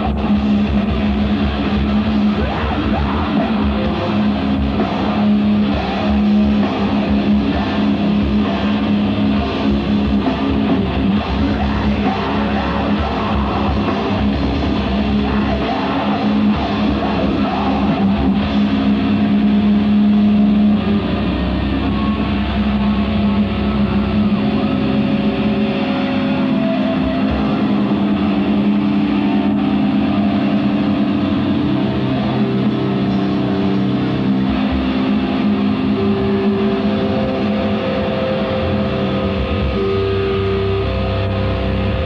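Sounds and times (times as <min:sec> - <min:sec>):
guitar feedback drone: 0:00.0 - 0:42.0
low amplifier hum: 0:00.0 - 0:42.0.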